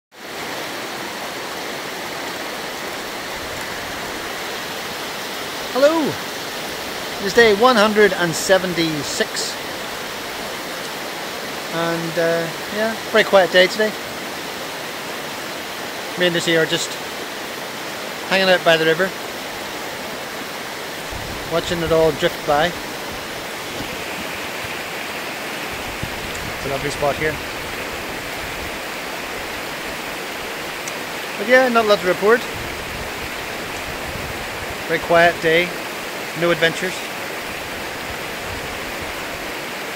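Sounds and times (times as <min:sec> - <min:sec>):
river rushing over rapids: 0:00.1 - 0:39.9.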